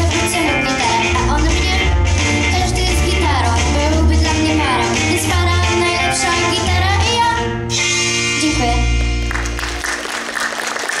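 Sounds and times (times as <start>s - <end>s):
audience applause: 9.2s - 11.0s.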